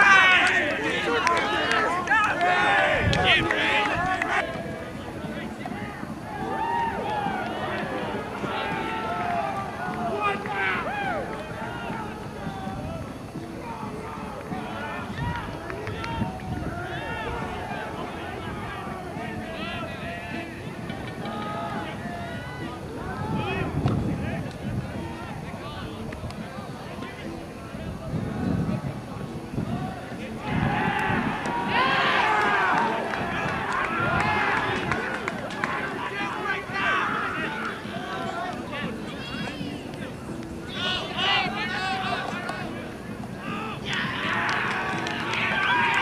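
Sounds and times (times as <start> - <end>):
distant players shouting: 0.0 - 26.0, 29.7 - 46.0.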